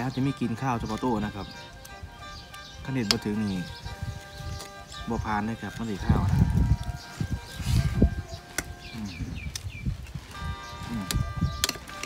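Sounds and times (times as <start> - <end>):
bird chirping: 0.0 - 12.0.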